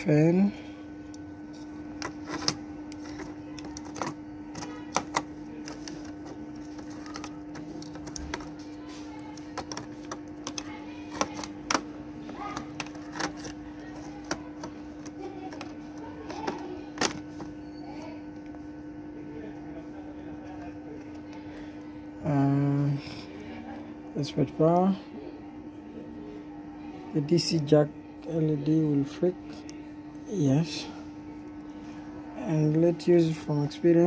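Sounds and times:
steady low hum: 0.0s - 34.0s.

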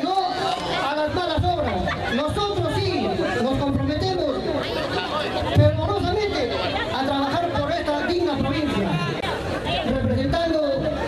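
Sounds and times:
man talking into a microphone: 0.0s - 11.0s
voices chattering: 0.0s - 11.0s.

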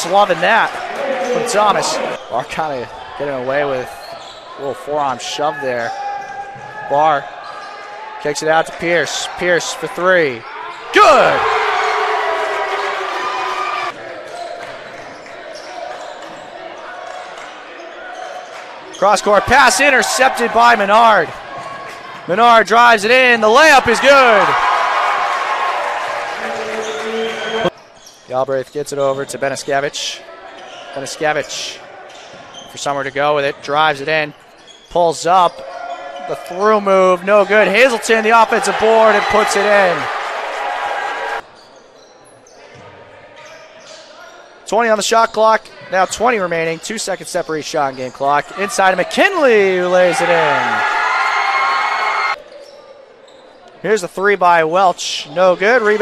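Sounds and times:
crowd cheering: 0.0s - 27.7s, 35.6s - 41.4s, 48.5s - 52.4s.

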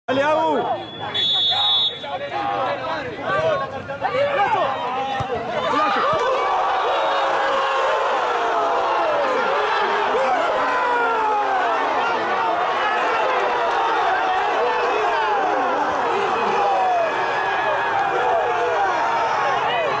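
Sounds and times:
crowd shouting and cheering: 0.1s - 20.0s.

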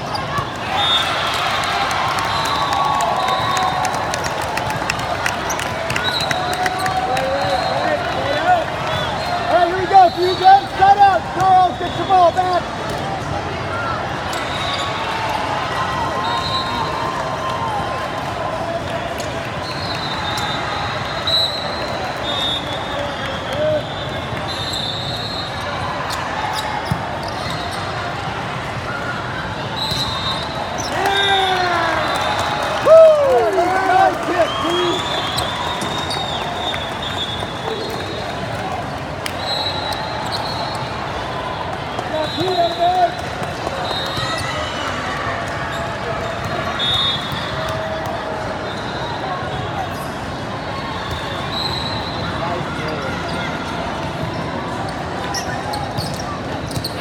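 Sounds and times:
shoes squeaking on court floor: 0.0s - 1.2s, 21.4s - 28.2s, 29.7s - 32.3s, 51.0s - 57.0s
players shouting: 0.0s - 21.3s, 25.6s - 49.6s
spectators chatter: 0.0s - 57.0s.

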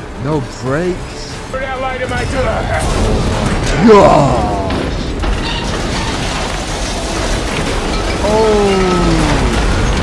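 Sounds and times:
train crashing: 1.1s - 10.0s.

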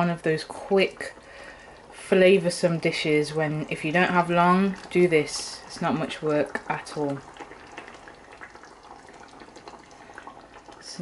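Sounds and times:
gravy bubbling in a pan: 0.0s - 11.0s.

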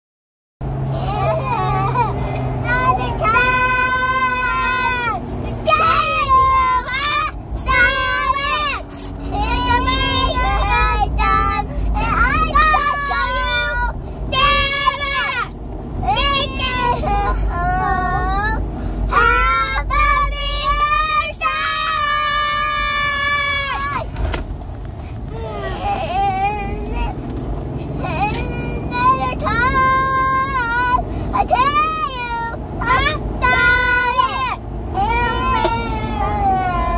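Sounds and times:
car cabin rumble: 0.6s - 36.9s.

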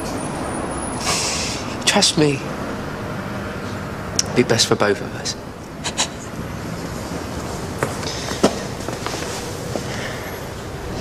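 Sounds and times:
background traffic noise: 0.0s - 11.0s
short hiss: 1.0s - 1.6s.

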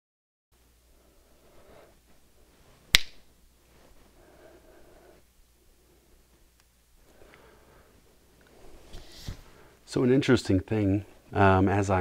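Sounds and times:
sharp snap: 2.9s - 3.3s.

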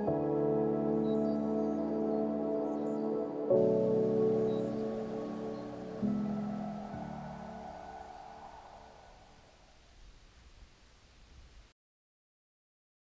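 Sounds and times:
background music held chords: 0.0s - 9.0s.

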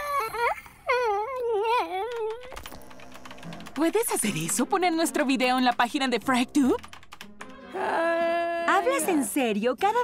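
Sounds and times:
cartoon zombie girl moaning: 0.0s - 3.6s.

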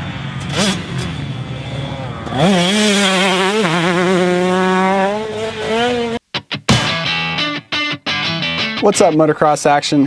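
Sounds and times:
two-stroke engine at high revs: 0.0s - 6.2s.

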